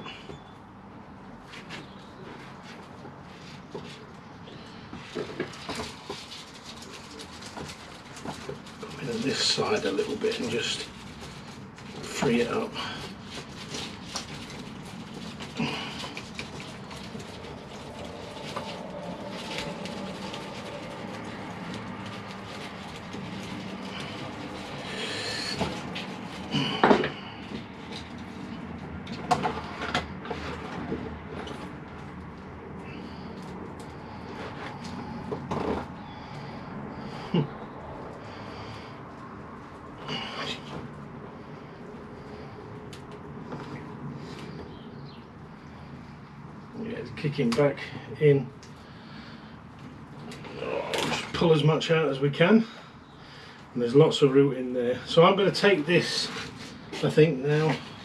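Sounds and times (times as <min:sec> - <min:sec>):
soil and roots crackling: 0:04.8 - 0:49.1, 0:49.9 - 0:52.7.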